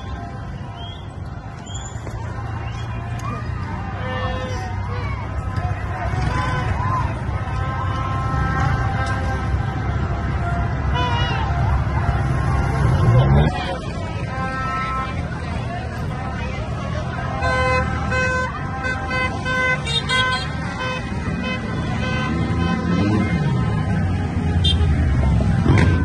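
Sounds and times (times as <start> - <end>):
crowd voices: 0.0 - 26.0
rumble of slow traffic: 0.0 - 26.0
car horns honking: 3.6 - 26.0.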